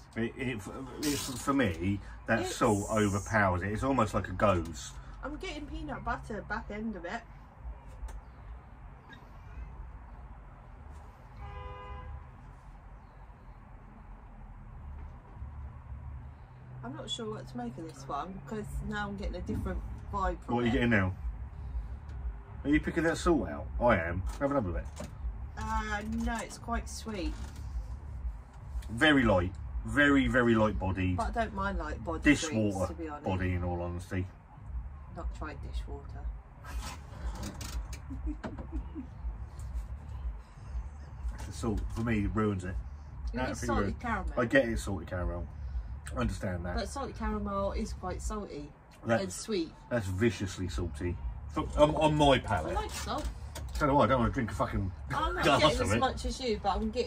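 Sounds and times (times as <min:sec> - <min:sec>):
low background rumble: 0:00.0 - 0:57.0
vehicle horn toot: 0:11.3 - 0:12.3.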